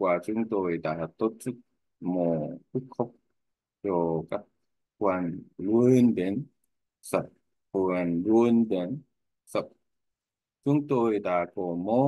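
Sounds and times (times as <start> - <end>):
person speaking: 0.0 - 9.8.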